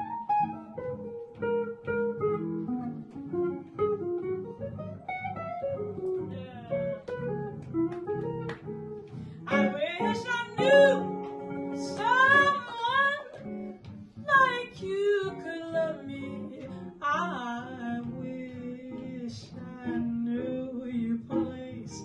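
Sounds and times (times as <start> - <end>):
jazz guitar: 0.0 - 22.0
woman singing a jazz ballad: 6.2 - 7.0, 9.5 - 13.5, 14.2 - 22.0.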